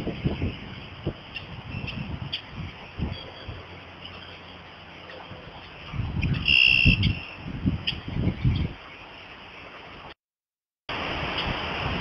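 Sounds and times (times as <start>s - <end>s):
wind buffeting microphone: 0.0s - 4.0s, 5.2s - 8.9s.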